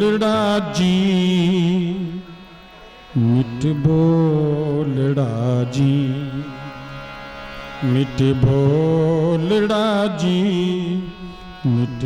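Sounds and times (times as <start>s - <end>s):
man singing a hymn: 0.0s - 2.4s, 3.2s - 6.8s, 7.8s - 12.0s
harmonium: 0.0s - 12.0s.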